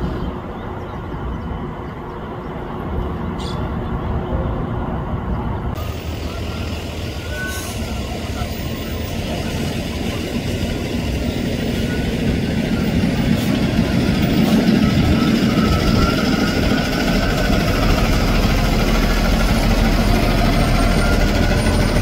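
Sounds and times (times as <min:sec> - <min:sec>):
bus engine running: 0:01.7 - 0:22.0.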